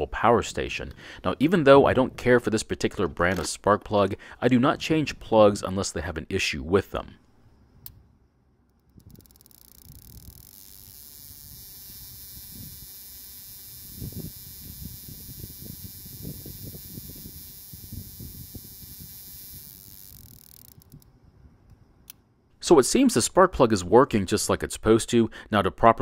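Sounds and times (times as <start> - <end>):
handling rustles and knocks: 2.9 - 4.2
spark plug buzzing: 9.5 - 21.0.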